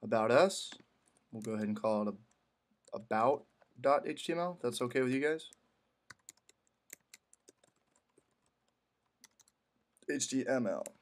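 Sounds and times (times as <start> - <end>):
faint keyboard typing: 0.7 - 3.8, 5.4 - 11.0.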